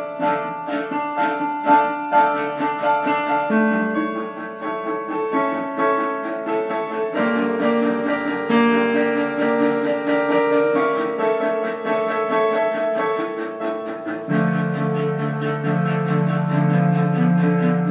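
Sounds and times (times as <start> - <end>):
cello held low notes: 0.0 - 17.9
piano notes: 0.0 - 17.9.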